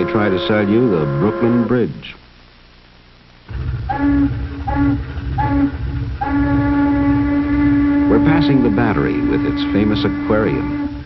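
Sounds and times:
boat steam whistle blasts: 0.0s - 1.8s, 3.9s - 11.0s
low rumble: 3.5s - 11.0s.

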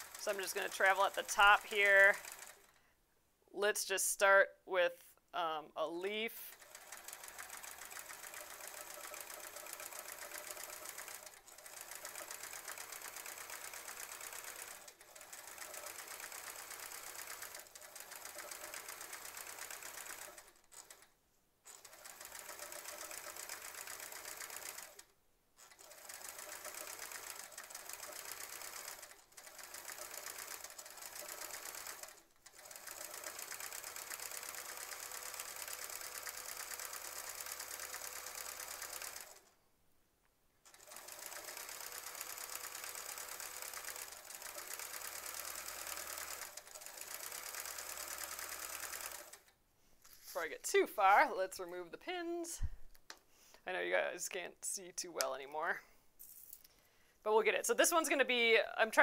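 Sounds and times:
sewing machine stitching: 0.0s - 2.8s, 6.4s - 21.1s, 21.7s - 39.5s, 40.6s - 51.2s.

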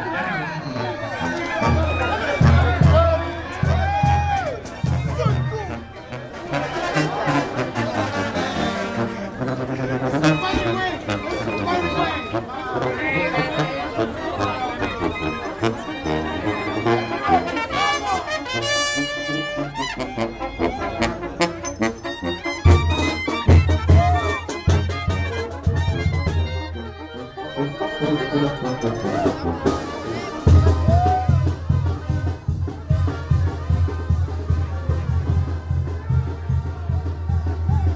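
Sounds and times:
crowd voices: 0.0s - 37.9s
marching brass band: 0.0s - 37.9s.

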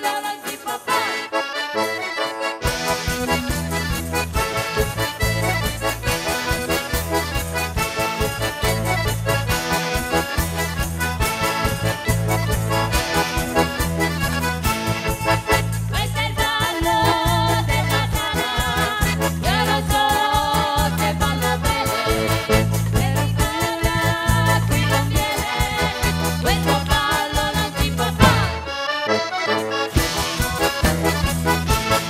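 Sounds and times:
button accordion: 0.0s - 32.0s
bass and drums beat: 2.7s - 28.9s, 29.8s - 32.0s.

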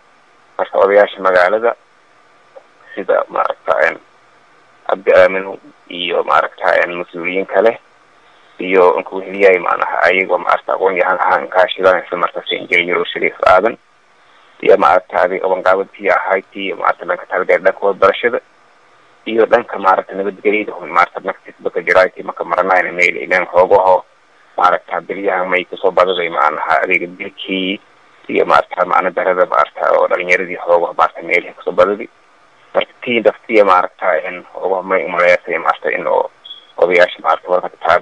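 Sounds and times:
man speaking into a microphone: 0.6s - 1.8s, 2.9s - 4.0s, 4.9s - 7.8s, 8.6s - 13.8s, 14.6s - 18.4s, 19.3s - 24.0s, 24.6s - 32.1s, 32.8s - 38.0s
person talking: 0.6s - 1.8s, 2.9s - 4.0s, 4.9s - 7.8s, 8.6s - 13.8s, 14.6s - 18.4s, 19.3s - 24.0s, 24.6s - 32.1s, 32.8s - 38.0s.

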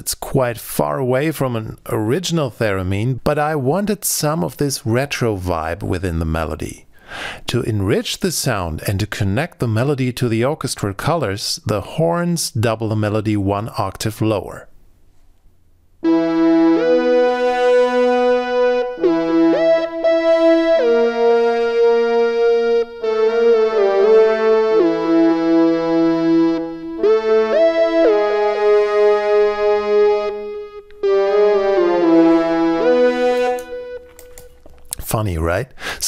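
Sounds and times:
orchestral horns: 16.0s - 34.6s
synthesized flute melody: 16.0s - 34.7s.

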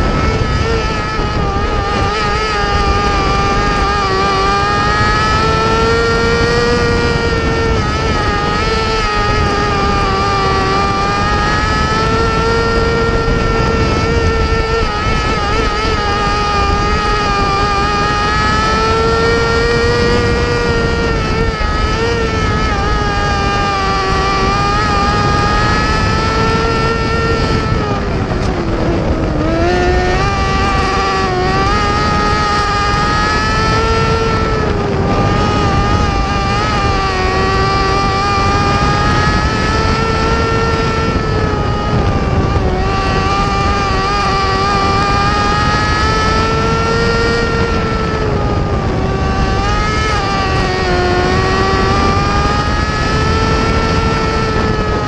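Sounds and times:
race car engine revving: 0.0s - 55.0s
steady rushing noise: 0.0s - 55.0s.

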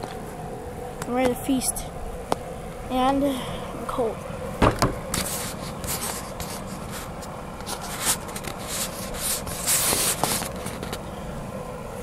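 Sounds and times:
steady low rumble: 0.0s - 12.0s
phone microphone rubbing and scraping: 5.0s - 11.0s.

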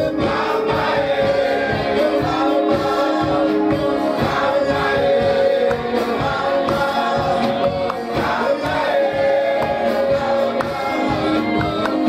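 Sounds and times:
group singing gospel: 0.0s - 12.0s
steady drum beat: 0.0s - 12.0s.

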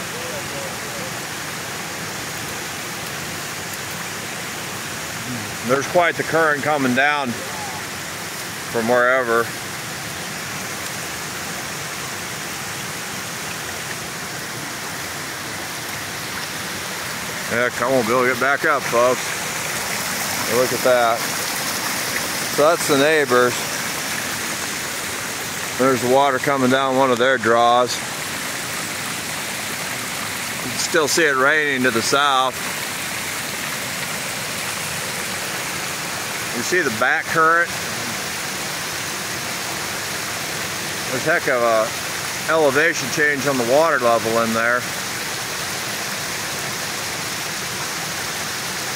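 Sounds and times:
floodwater rushing: 0.0s - 48.9s.

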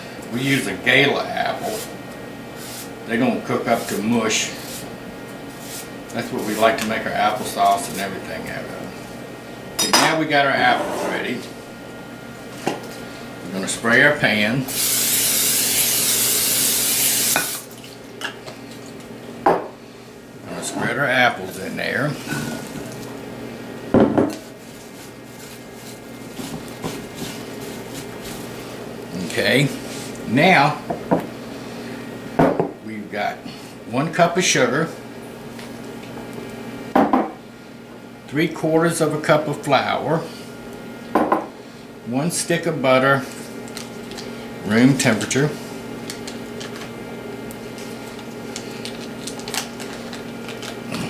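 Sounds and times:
steady low hum: 0.0s - 51.0s
apple slices shuffling in dish: 1.5s - 1.9s, 2.6s - 4.9s, 5.5s - 8.3s, 24.4s - 30.2s
paper wrapper crinkling and tearing: 47.8s - 51.0s.

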